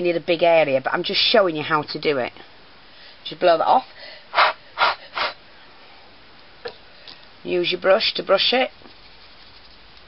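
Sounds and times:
short puffs of breath: 4.0 - 5.4.

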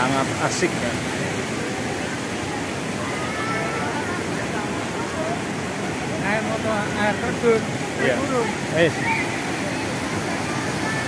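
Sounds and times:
faint voices: 0.0 - 11.0
falling water rushing: 0.0 - 11.0.

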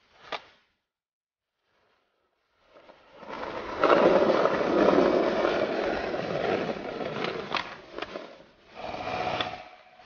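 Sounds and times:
skateboard wheels rolling on concrete: 1.6 - 9.6.

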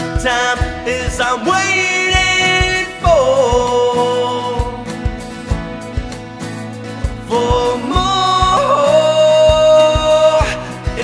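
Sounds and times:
man singing long notes: 0.0 - 5.2, 7.3 - 11.0
strummed acoustic guitar: 0.0 - 11.0.

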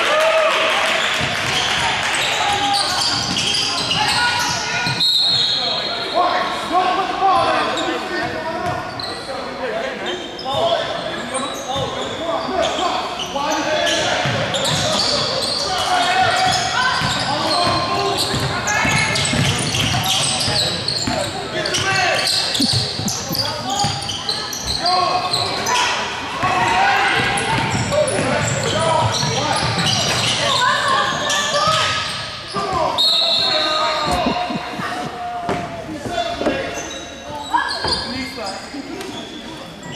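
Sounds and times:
echoing voices of players and crowd: 0.0 - 39.9
shrill referee's whistle: 4.8 - 6.1, 33.0 - 34.2.

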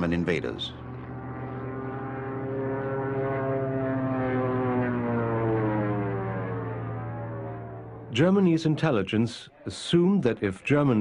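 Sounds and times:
propeller aircraft droning: 0.0 - 9.2.

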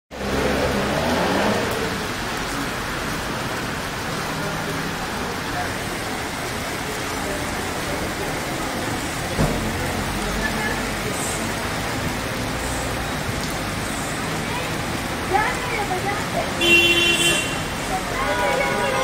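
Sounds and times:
heavy rain on street: 0.1 - 19.0
vehicles driving through water: 0.1 - 19.0.

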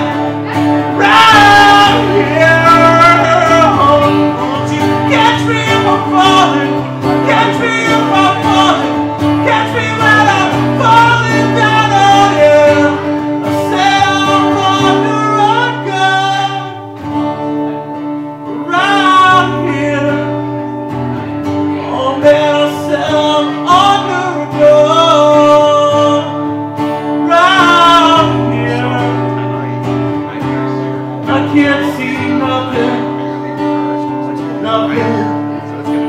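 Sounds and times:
acoustic guitar chords: 0.0 - 36.0
man singing: 0.0 - 36.0.

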